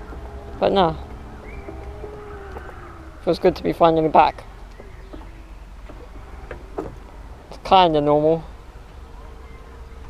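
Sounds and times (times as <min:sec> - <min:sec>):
low rumble: 0:00.0 - 0:07.6.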